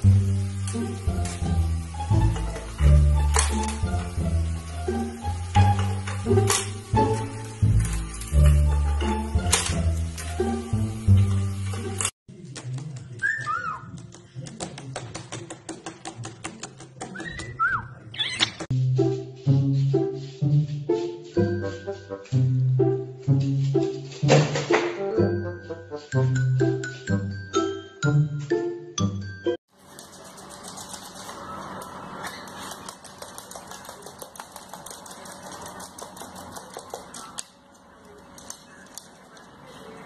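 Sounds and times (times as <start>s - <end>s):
music: 0.0s - 12.1s, 18.7s - 29.6s
parrot claws clicking on floor: 29.9s - 37.6s.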